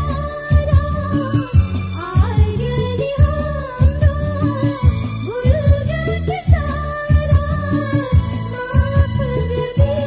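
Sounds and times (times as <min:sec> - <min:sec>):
devotional song melody: 0:00.0 - 0:10.0
steady drum beat: 0:00.0 - 0:10.0.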